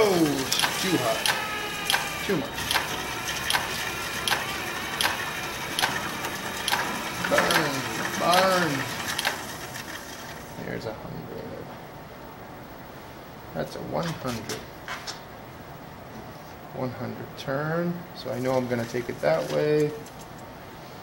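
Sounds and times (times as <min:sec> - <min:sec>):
cordless drill running: 0:00.0 - 0:10.6
regular clicks: 0:00.4 - 0:07.6, 0:08.9 - 0:09.4.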